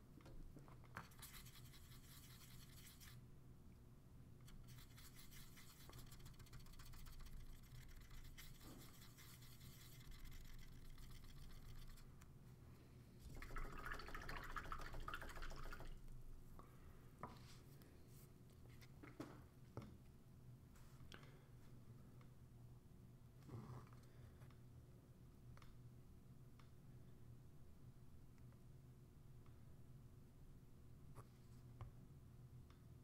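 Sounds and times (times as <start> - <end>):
paintbrush brushing paint: 1.0 - 3.2, 4.4 - 12.1.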